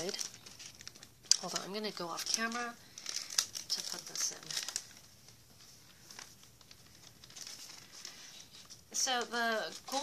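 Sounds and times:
crinkly packaging rustling: 0:00.0 - 0:10.0.

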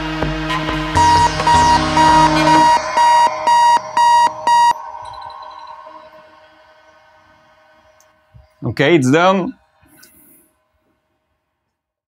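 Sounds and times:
techno track: 0:00.1 - 0:06.4
beeping synth stab: 0:00.5 - 0:07.2.

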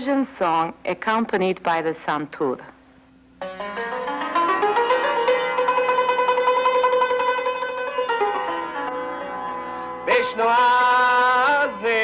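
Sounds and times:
hammered dulcimer tremolo: 0:03.4 - 0:10.0.

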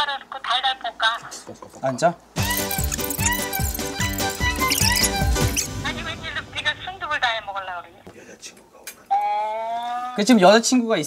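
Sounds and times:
woman speaking over phone speaker: 0:00.0 - 0:01.4, 0:05.8 - 0:08.1.

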